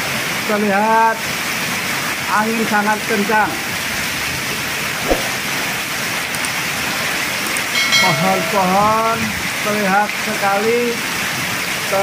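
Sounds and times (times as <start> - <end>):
short thump: 5.0 - 5.4
heavy rain pouring: 8.5 - 12.0.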